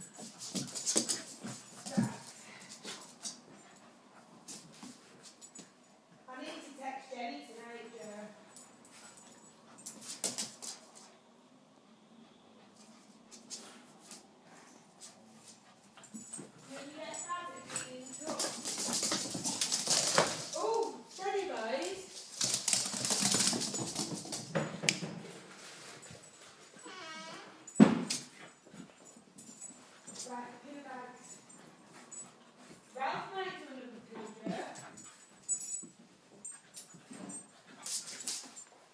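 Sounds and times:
dogs scuffling: 0:00.0 - 0:11.1, 0:12.7 - 0:26.9, 0:27.6 - 0:38.9.

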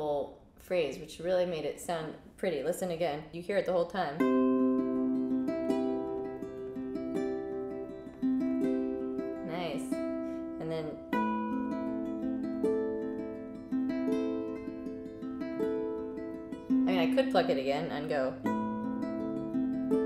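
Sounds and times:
fingerpicked ukulele melody: 0:04.2 - 0:20.0.

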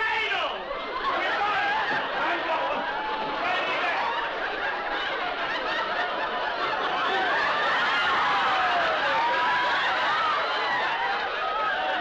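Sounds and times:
studio audience laughing: 0:00.8 - 0:12.0.

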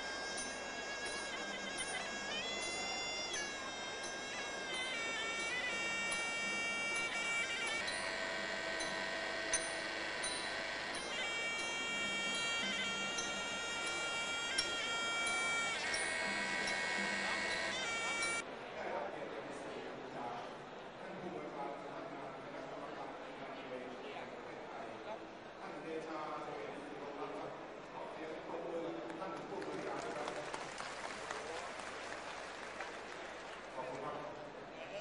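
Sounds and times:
oboe playing held nasal note: 0:00.0 - 0:18.4
crowd noise: 0:00.0 - 0:35.0.

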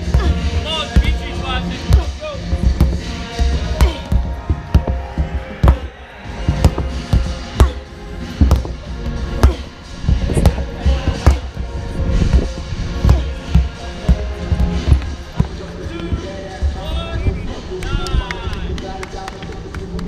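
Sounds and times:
sledgehammers thudding on rubber tires: 0:00.0 - 0:17.5
background music with steady beat: 0:00.0 - 0:20.0.

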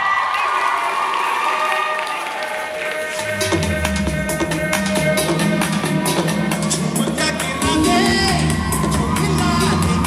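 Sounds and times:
audience cheering and shouting: 0:00.0 - 0:10.0.

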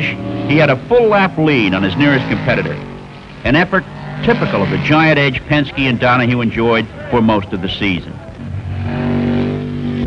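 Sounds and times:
racing car engine running: 0:00.0 - 0:10.0.

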